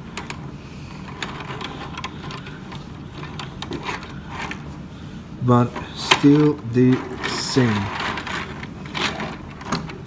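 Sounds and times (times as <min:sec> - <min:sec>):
plastic toy wheels rolling: 0:00.1 - 0:04.6, 0:05.8 - 0:10.0.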